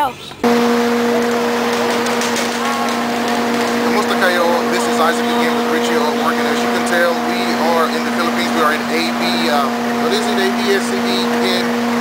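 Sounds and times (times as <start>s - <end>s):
low mechanical hum: 0.3s - 12.0s
man speaking: 3.8s - 11.8s.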